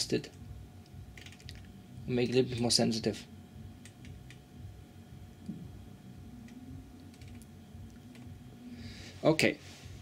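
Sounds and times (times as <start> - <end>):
low steady equipment hum: 0.0 - 10.0.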